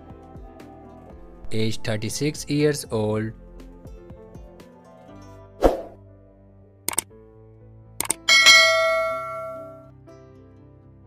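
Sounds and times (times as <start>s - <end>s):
soft background music: 0.0s - 11.0s
mouse clicks: 6.9s - 7.1s, 8.0s - 8.3s
notification bell ding: 8.0s - 9.8s.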